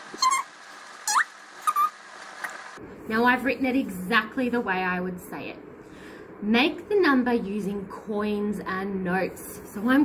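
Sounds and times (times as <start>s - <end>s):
marker squeaking on paper: 0.2s - 0.5s.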